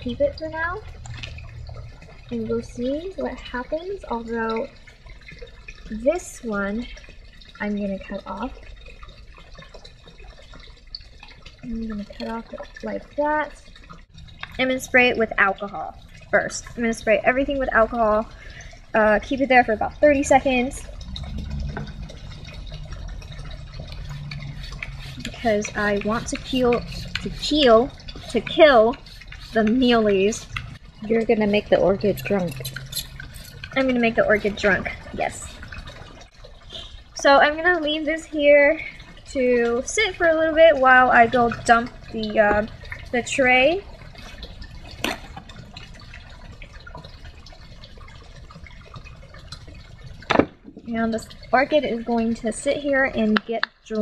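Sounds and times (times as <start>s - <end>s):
faint liquid dripping: 0.0s - 54.0s
low steady hum: 0.0s - 54.0s.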